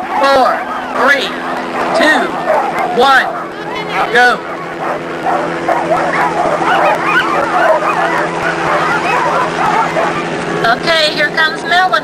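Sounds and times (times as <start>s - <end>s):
sled dogs yelping and barking: 0.0s - 10.6s
steady low hum: 0.0s - 12.0s.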